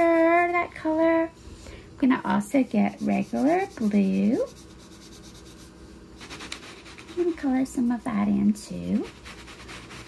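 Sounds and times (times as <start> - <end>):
crayon scribbling on paper: 0.0 - 1.0, 2.5 - 10.0.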